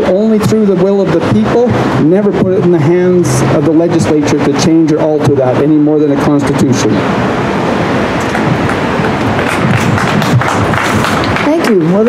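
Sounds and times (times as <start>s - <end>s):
city street traffic rush: 0.0s - 12.0s.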